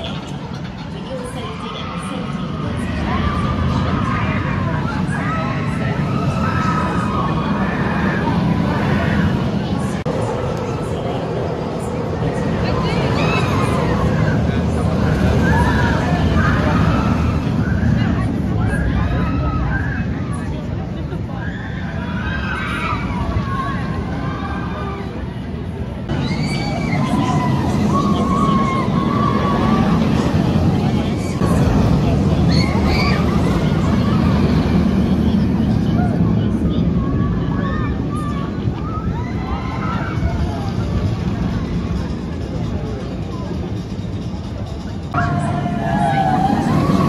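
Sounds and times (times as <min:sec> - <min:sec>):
roller coaster train rumbling: 0:00.0 - 0:47.0
riders screaming: 0:45.2 - 0:47.0.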